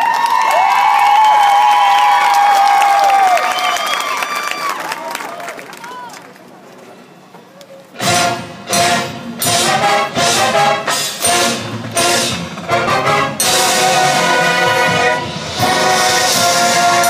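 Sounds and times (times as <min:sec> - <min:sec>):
marching band brass and percussion: 0:07.9 - 0:17.0.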